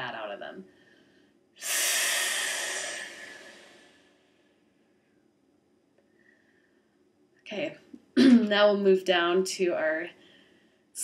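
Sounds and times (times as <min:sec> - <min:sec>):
woman's hissing exhale: 0:01.6 - 0:04.4.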